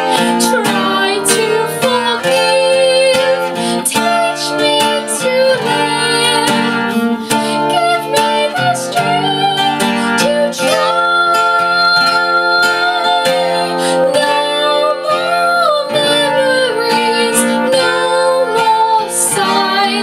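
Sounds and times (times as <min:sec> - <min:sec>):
strummed acoustic guitar: 0:00.0 - 0:20.0
woman singing: 0:00.0 - 0:20.0.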